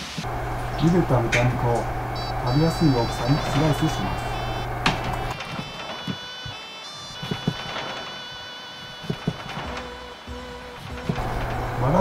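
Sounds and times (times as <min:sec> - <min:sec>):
background music with held tones: 0:05.4 - 0:12.0.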